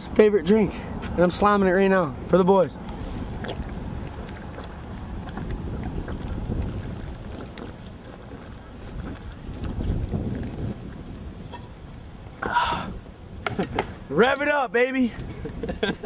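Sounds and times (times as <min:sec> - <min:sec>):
low rumbling wind: 0:00.0 - 0:16.0
microphone handling noise: 0:02.9 - 0:14.1.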